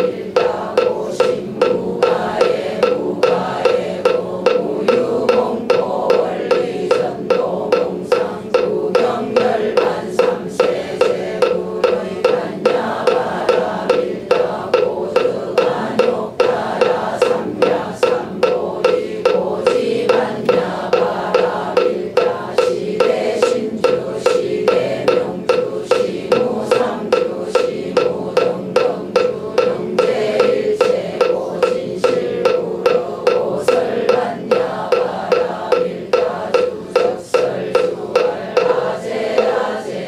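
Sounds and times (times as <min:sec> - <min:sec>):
congregation chanting in unison: 0:00.0 - 0:40.0
wooden fish drum struck: 0:00.0 - 0:40.0.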